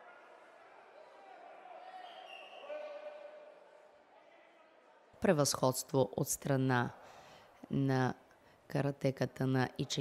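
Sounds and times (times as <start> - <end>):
distant voices shouting in a hall: 0.0 - 5.2.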